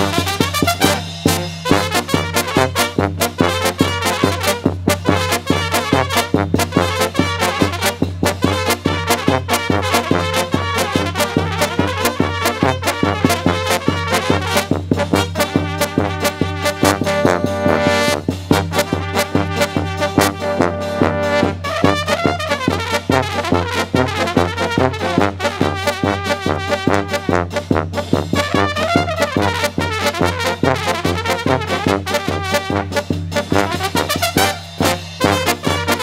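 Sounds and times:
bass drum beat: 0.0 - 36.0
trumpets and tenor horns: 0.0 - 36.0
tuba bass line: 0.0 - 36.0.

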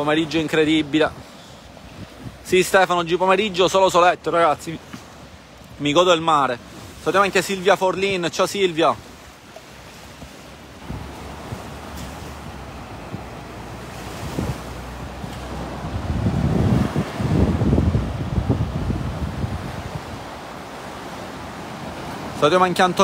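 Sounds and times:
wind rumbling on microphone: 0.0 - 2.6, 9.0 - 22.4
waves washing onto sandy beach: 0.0 - 23.0.

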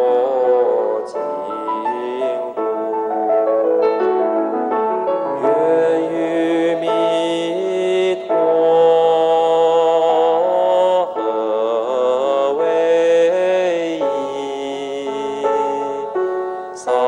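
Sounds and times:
sung chant: 0.0 - 2.9, 5.4 - 17.0
melodic accompaniment: 0.0 - 17.0.

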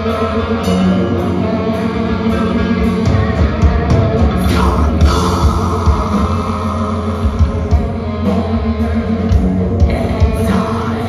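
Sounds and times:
metal band playing: 0.0 - 11.0.

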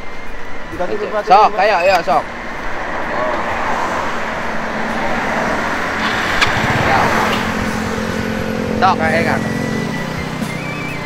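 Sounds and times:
road traffic: 0.0 - 11.0
vehicle engine humming: 0.0 - 11.0.

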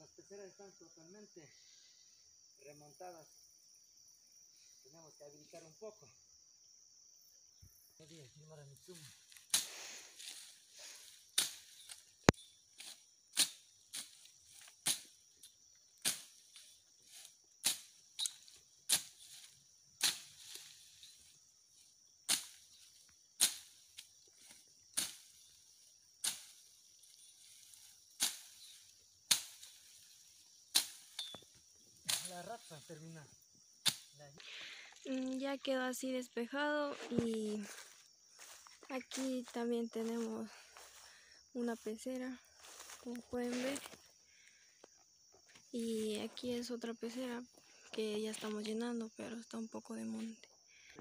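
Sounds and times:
high insect trill: 0.0 - 51.0.

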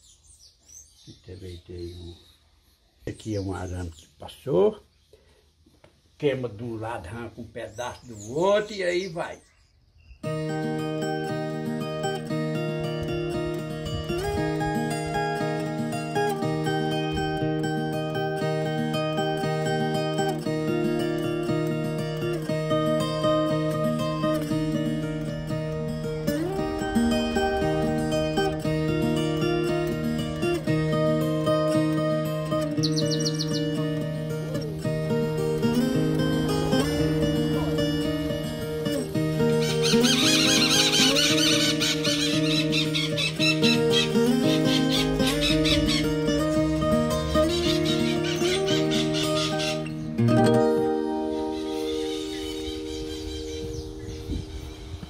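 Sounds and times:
high chirping: 7.3 - 15.6, 23.0 - 55.0
plucked acoustic guitar music: 10.2 - 55.0
low drone: 25.0 - 30.6.

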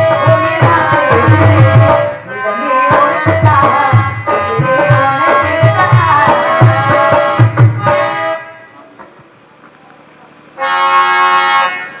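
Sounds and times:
harmonium chord: 0.0 - 9.0, 10.3 - 12.0.

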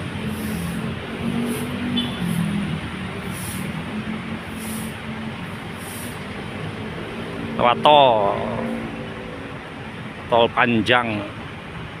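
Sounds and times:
diesel bus engines idling: 0.0 - 12.0
short high hisses: 0.2 - 6.4.

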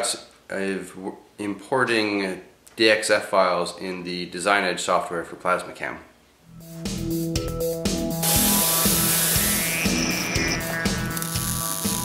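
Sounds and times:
music with steady beat: 6.6 - 12.0
loud hiss: 8.2 - 12.0.

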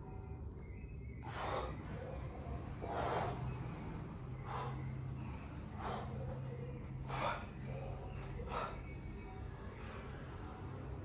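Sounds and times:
man breathing hard: 1.2 - 9.1.

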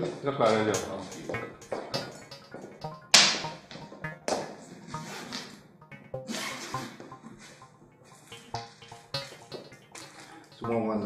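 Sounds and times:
background music: 0.5 - 11.0.

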